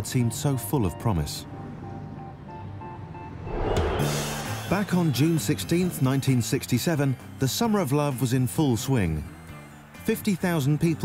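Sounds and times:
soft background music: 0:00.0 - 0:11.0
rising rush of noise: 0:03.4 - 0:05.7.

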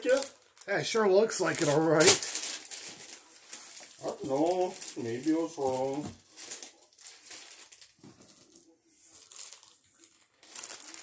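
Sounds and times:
packaging crinkling and rustling: 0:00.0 - 0:11.0.

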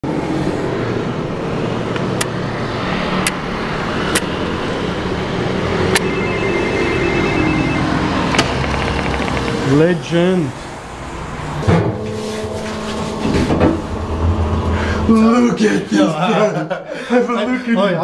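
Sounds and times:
intercom two-note ring: 0:06.0 - 0:09.7.

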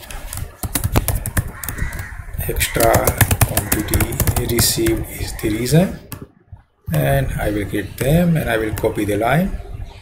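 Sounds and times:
computer keyboard typing: 0:00.0 - 0:02.1, 0:02.8 - 0:05.1.

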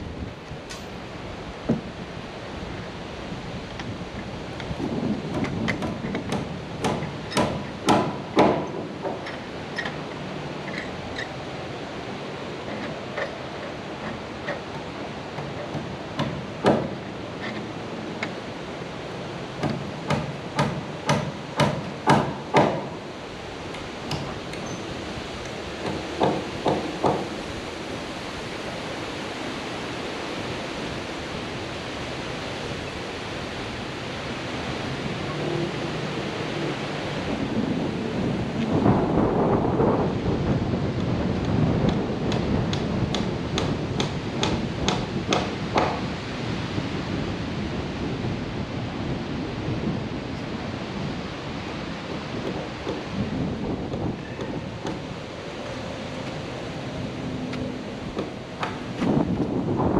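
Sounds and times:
wind buffeting microphone: 0:00.0 - 0:59.9
hammer blows nailing siding: 0:04.6 - 0:10.1, 0:12.6 - 0:17.6, 0:19.5 - 0:23.0, 0:25.6 - 0:27.5, 0:41.0 - 0:46.2, 0:53.9 - 0:55.2.

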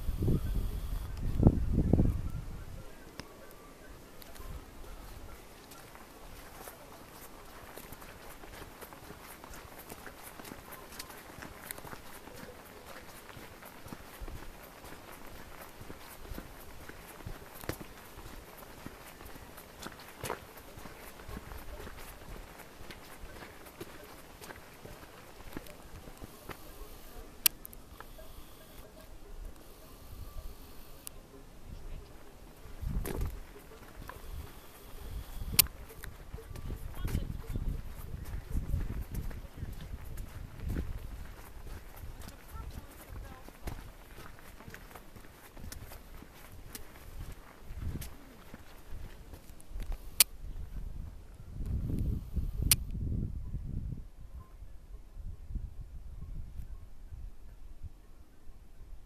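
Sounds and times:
wind rumbling on microphone: 0:00.0 - 0:03.2, 0:31.6 - 0:58.1
footsteps on stony path: 0:00.0 - 0:52.8.

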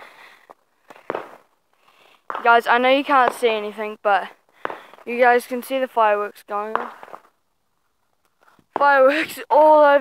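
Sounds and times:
person talking: 0:02.4 - 0:04.4, 0:05.0 - 0:07.0, 0:08.8 - 0:10.0.

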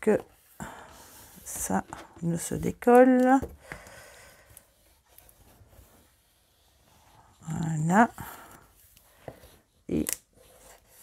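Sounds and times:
faint rubbing of paper: 0:04.2 - 0:11.0.

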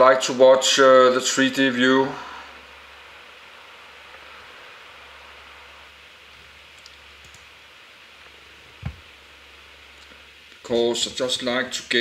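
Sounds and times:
room tone hiss and hum: 0:00.0 - 0:12.0
faint clicks: 0:06.8 - 0:07.5.

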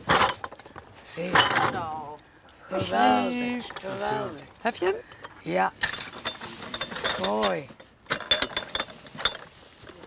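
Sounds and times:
glass jars clinking in a box: 0:01.3 - 0:01.8, 0:05.8 - 0:09.6.

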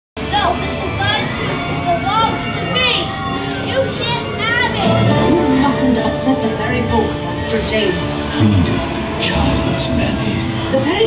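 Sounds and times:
high children's voices: 0:00.3 - 0:06.4
eerie soundtrack music: 0:04.7 - 0:11.0.

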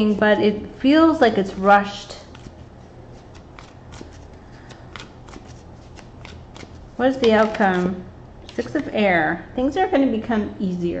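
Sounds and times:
cards being shuffled: 0:01.3 - 0:08.9.

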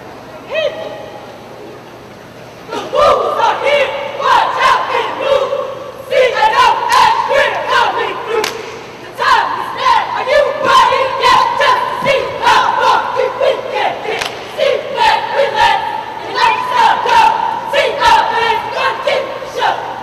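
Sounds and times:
arena crowd noise: 0:00.0 - 0:20.0
people shouting a chant: 0:02.7 - 0:20.0.

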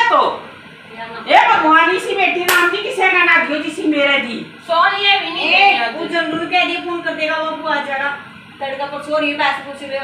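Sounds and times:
hand clap: 0:02.5 - 0:02.8.

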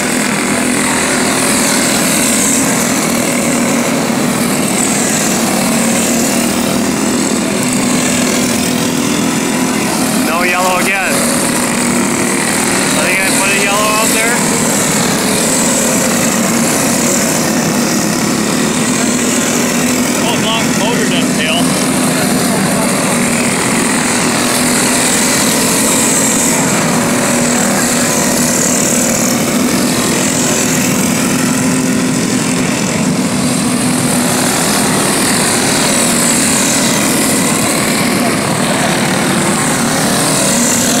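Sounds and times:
go-kart engines racing: 0:00.0 - 0:41.0.

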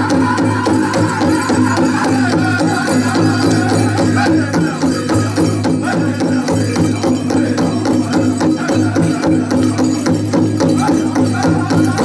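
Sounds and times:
big drum steady beat: 0:00.0 - 0:12.0
singers chanting: 0:00.0 - 0:12.0.

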